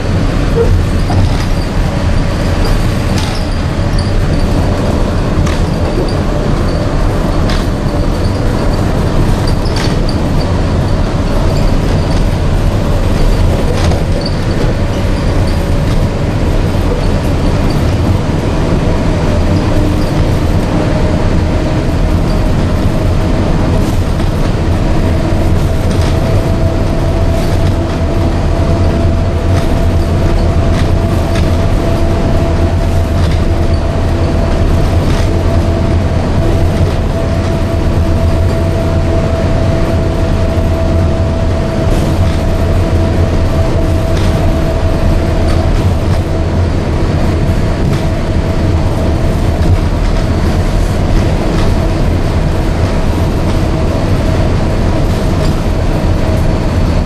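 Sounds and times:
monorail low rumble: 0:00.0 - 0:57.0
monorail whine: 0:00.0 - 0:57.0.

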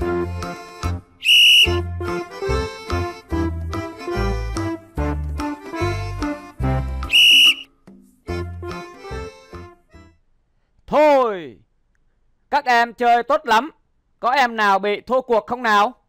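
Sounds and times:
upbeat children's music: 0:00.0 - 0:01.2, 0:01.8 - 0:07.2, 0:07.8 - 0:10.2
sports whistle blasts: 0:01.2 - 0:01.8, 0:07.1 - 0:07.7.

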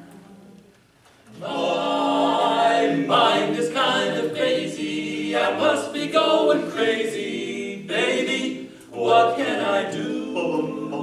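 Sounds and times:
men singing a cappella harmony: 0:01.4 - 0:11.0.

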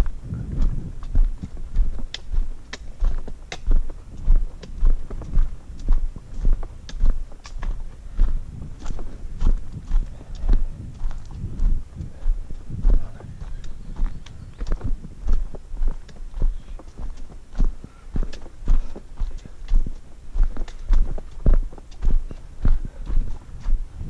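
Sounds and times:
footsteps on rocky dirt trail: 0:00.0 - 0:24.0.

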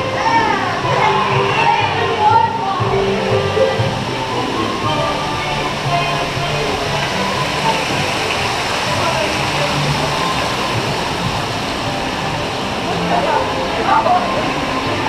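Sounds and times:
music playing: 0:00.0 - 0:15.0
water rushing: 0:00.0 - 0:15.0.

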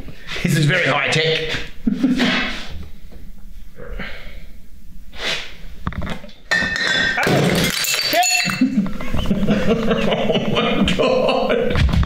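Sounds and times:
glass bottle shattering: 0:06.5 - 0:08.8
glass shards clinking: 0:06.5 - 0:08.8.

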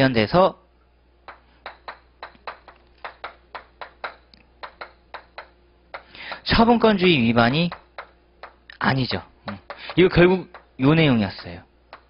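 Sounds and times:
chalk tapping on chalkboard: 0:01.3 - 0:06.8, 0:07.7 - 0:08.8, 0:09.5 - 0:12.0.

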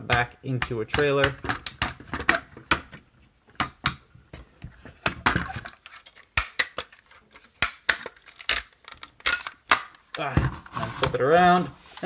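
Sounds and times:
plastic toy parts clicking: 0:00.1 - 0:03.0, 0:05.0 - 0:10.2.

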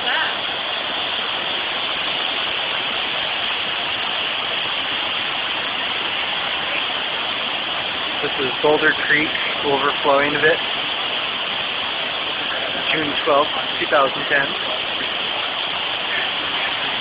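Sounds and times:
flooded creek rushing: 0:00.0 - 0:17.0.

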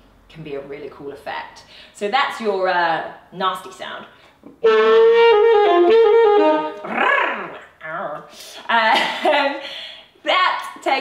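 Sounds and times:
alto saxophone growling: 0:04.5 - 0:07.6.

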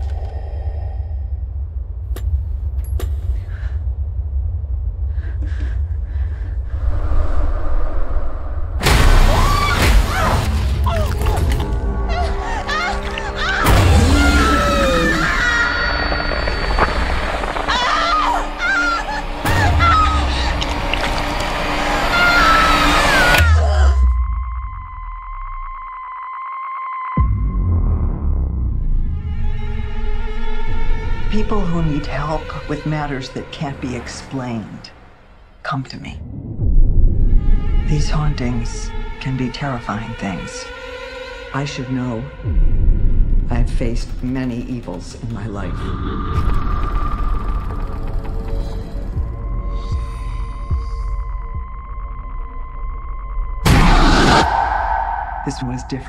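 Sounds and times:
low rumbling drone: 0:00.0 - 0:09.6, 0:42.3 - 0:56.0
low rumble: 0:00.0 - 0:22.1, 0:42.4 - 0:56.0
sudden deep hit: 0:08.5 - 0:10.9, 0:53.5 - 0:55.7.

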